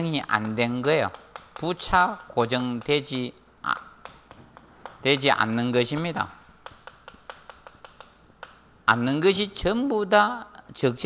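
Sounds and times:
chalk tapping on chalkboard: 0.0s - 8.8s.

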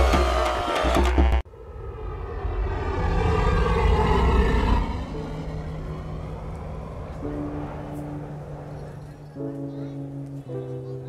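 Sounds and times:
low rumbling swell: 1.5s - 10.6s
low drone chord: 1.5s - 11.0s.

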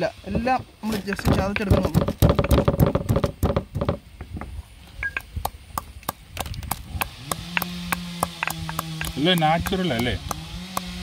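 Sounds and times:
pestle pounding in stone mortar: 0.9s - 4.0s, 5.3s - 11.0s
steady low hum: 1.1s - 11.0s.

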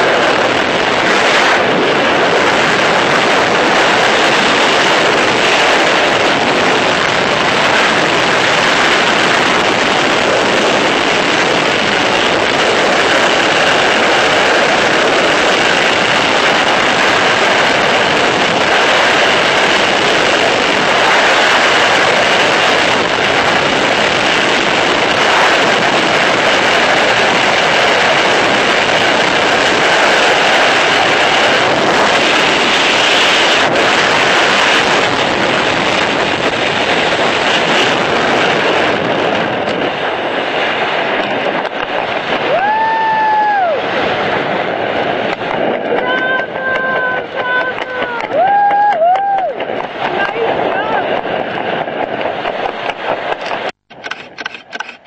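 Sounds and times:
wind blasting across microphone: 0.0s - 55.0s.

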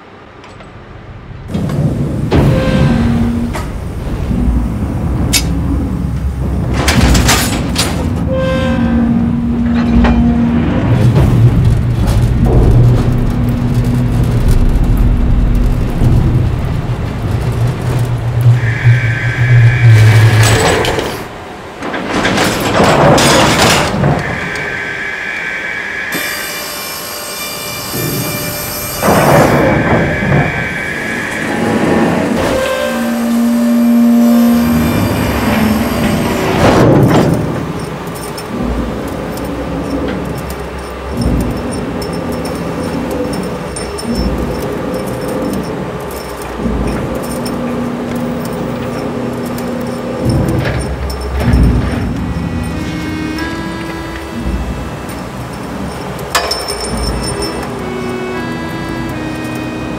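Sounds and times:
machinery low hum: 0.0s - 59.9s
loud rushes of noise: 0.9s - 27.0s, 27.9s - 59.9s.

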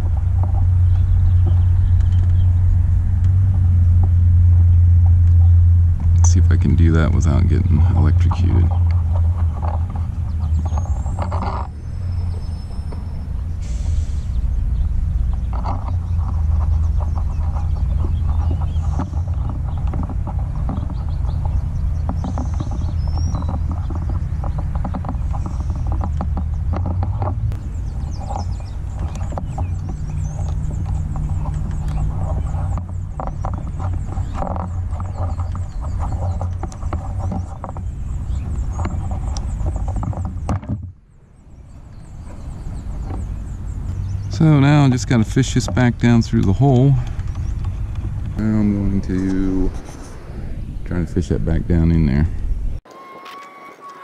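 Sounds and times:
low rumble: 0.0s - 52.8s
faint bird chirps: 4.6s - 50.9s.

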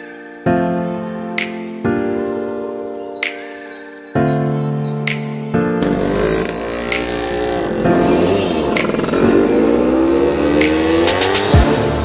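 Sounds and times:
background music with steady beat: 0.0s - 12.0s
car engine accelerating hard: 5.8s - 12.0s.

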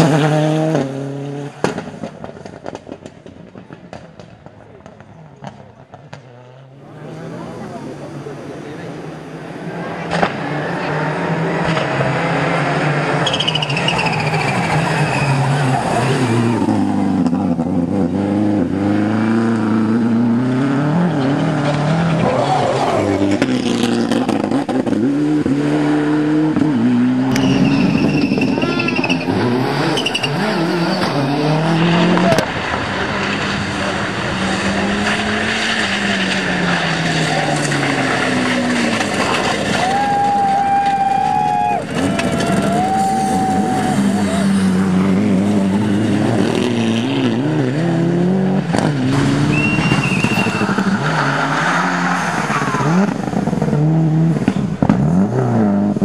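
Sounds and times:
cars passing: 0.0s - 56.0s
rally car engines at full throttle: 0.0s - 56.0s.

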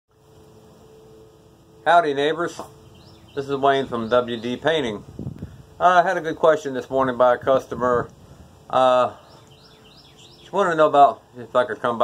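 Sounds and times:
faint steady hum: 0.1s - 12.0s.

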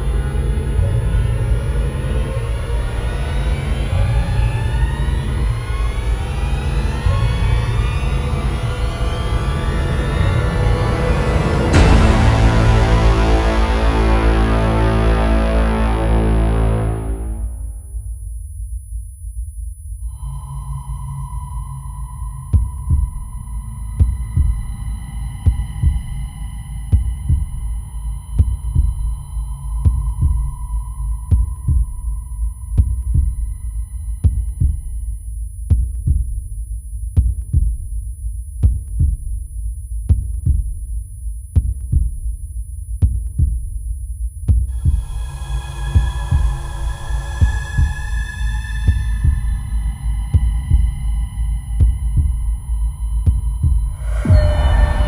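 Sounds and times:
sustained synth drone: 0.0s - 18.0s, 44.7s - 55.0s
heartbeat-like pulse: 0.0s - 55.0s
bright high sustained layer: 54.0s - 55.0s.

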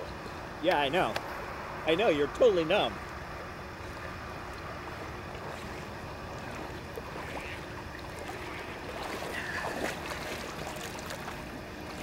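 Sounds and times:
low rush of outdoor air: 0.0s - 12.0s
water lapping around wading person: 2.3s - 12.0s.

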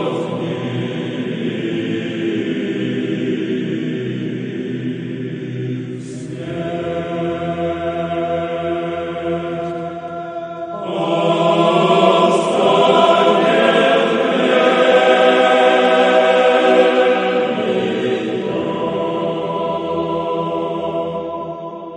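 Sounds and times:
choral chant: 0.0s - 21.9s.

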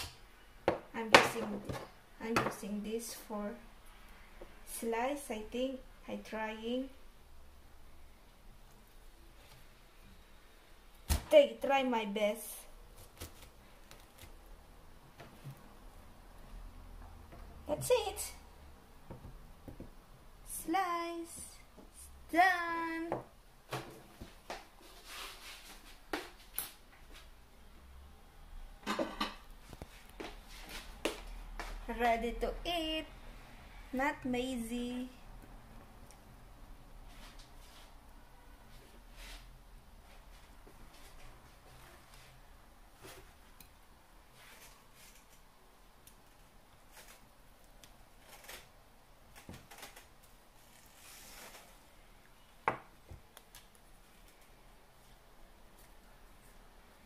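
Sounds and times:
soft scrapes and rustles: 24.1s - 27.3s, 29.6s - 31.0s, 37.0s - 38.0s, 38.7s - 43.5s, 44.3s - 45.4s, 50.5s - 52.2s.

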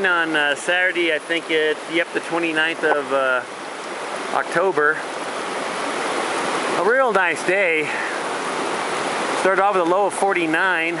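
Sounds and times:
water rushing over boulders: 0.0s - 11.0s.

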